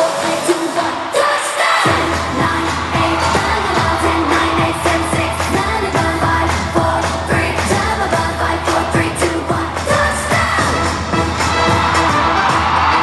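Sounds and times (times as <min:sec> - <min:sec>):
pop song with female vocals: 0:00.0 - 0:13.0
kick drum beat: 0:01.9 - 0:08.3
heavy bass line: 0:01.9 - 0:13.0.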